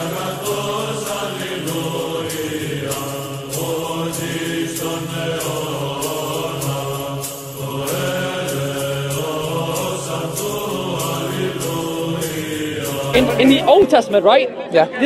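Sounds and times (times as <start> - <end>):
voices singing long notes: 0.0 - 14.0.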